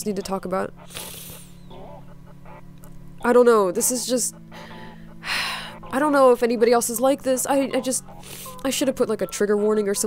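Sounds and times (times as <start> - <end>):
woman speaking haltingly: 0.0 - 0.8, 3.2 - 4.5, 5.3 - 10.0
low steady hum: 0.0 - 10.0.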